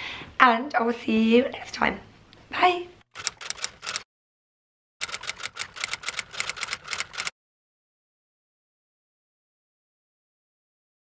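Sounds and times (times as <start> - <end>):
typewriter keys clacking: 3.2 - 4.0, 5.0 - 7.3.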